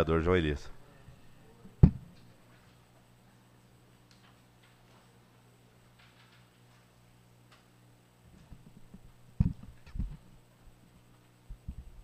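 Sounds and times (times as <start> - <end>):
electrical hum: 0.0 - 12.0
microphone handling bumps: 8.4 - 10.2.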